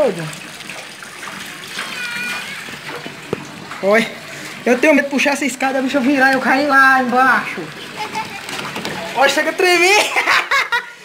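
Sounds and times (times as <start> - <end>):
water rushing into a tank: 0.0 - 11.0.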